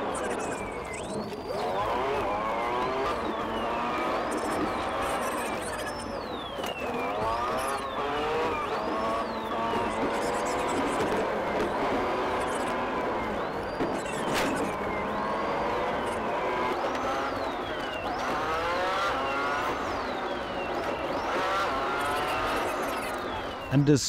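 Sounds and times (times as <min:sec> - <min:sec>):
car engine revving hard: 0:00.0 - 0:23.6
police siren wailing: 0:00.0 - 0:24.0.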